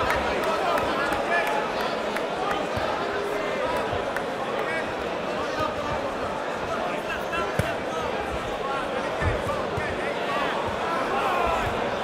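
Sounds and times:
crowd voices and calls: 0:00.0 - 0:12.0.

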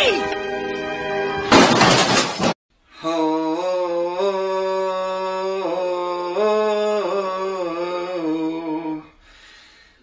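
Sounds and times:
glass shattering: 0:01.5 - 0:02.6.

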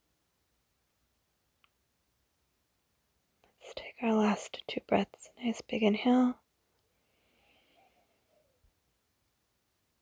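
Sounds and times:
woman speaking softly: 0:03.5 - 0:06.4
breath: 0:06.9 - 0:08.6.

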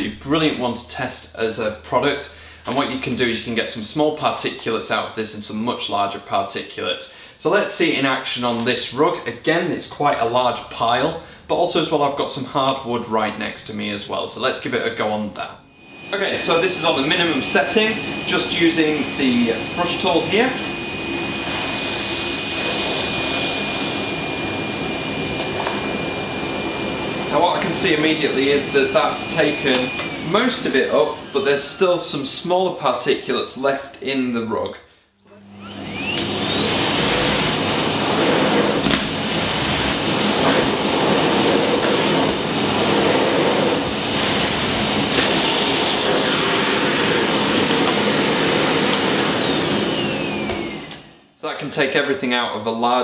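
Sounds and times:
vacuum cleaner running: 0:15.7 - 0:33.6, 0:35.3 - 0:51.3.

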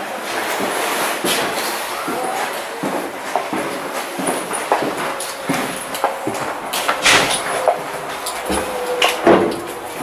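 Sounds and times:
train wheels rumbling and rattling: 0:00.2 - 0:10.0.

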